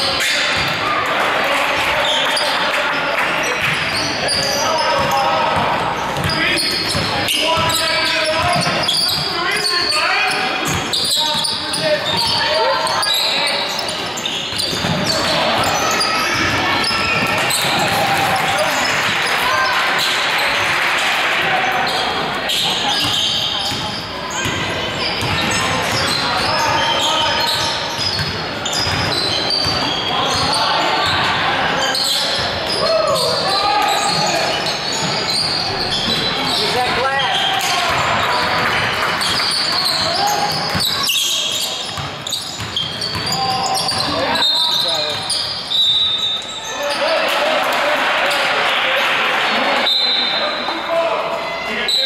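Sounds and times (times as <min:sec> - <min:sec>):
shouts and chatter: 0:00.0 - 0:52.0
basketball bouncing: 0:00.5 - 0:00.8, 0:05.0 - 0:07.8, 0:08.4 - 0:09.3, 0:13.9 - 0:19.0, 0:23.0 - 0:26.7, 0:28.0 - 0:31.2, 0:41.9 - 0:44.1
sneakers squeaking on hardwood: 0:03.4 - 0:20.2, 0:21.8 - 0:47.2.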